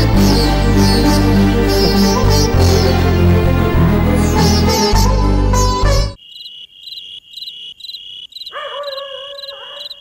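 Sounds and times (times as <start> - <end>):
background music: 0.0 - 6.2
crickets chirping: 6.2 - 10.0.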